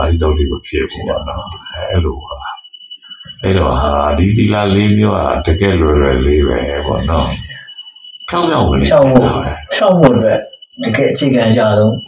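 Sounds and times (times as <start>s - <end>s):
monk delivering sermon: 0.0s - 2.6s, 3.2s - 12.0s.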